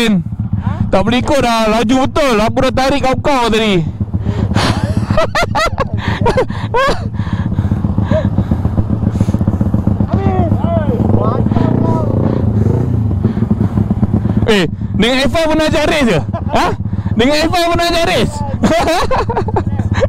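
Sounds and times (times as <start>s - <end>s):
motorcycle engine idling: 0.0s - 20.0s
second motorcycle idling: 0.0s - 20.0s.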